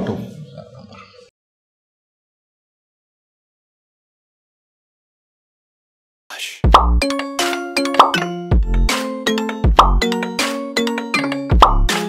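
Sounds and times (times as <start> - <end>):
deep bass hit with pitch sweep: 6.7 - 7.0.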